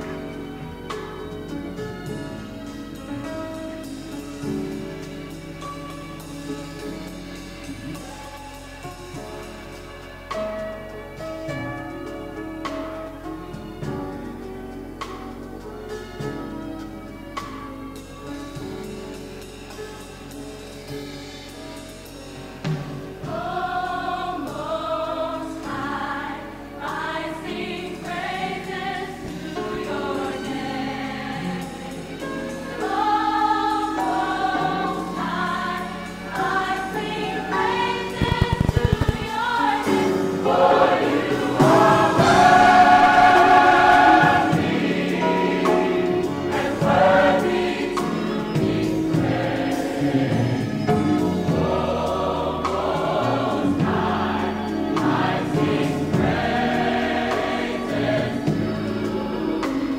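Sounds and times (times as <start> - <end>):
gospel choir singing: 0.0 - 10.8, 22.6 - 59.9.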